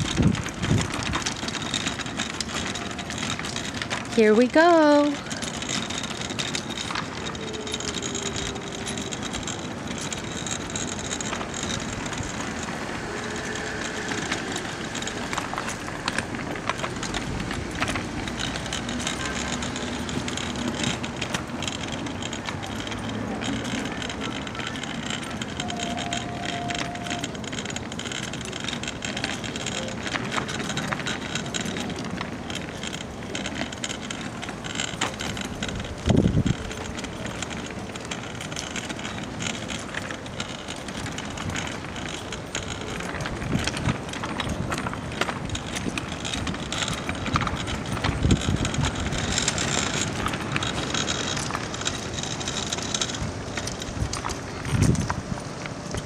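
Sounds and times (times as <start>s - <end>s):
wagon wheels rolling over pavement: 0.0s - 56.0s.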